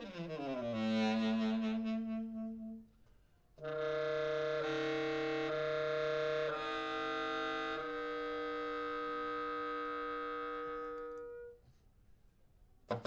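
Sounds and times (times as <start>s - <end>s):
saxophone ensemble playing chords: 0.0s - 2.9s, 3.6s - 11.5s.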